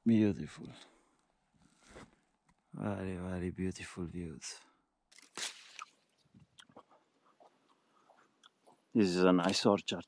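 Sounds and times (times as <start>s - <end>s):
faint chewing: 6.4s - 8.9s.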